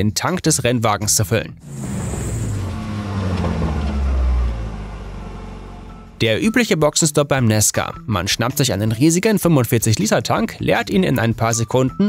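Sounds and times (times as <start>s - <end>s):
vehicle engine rumble: 1.6s - 6.2s.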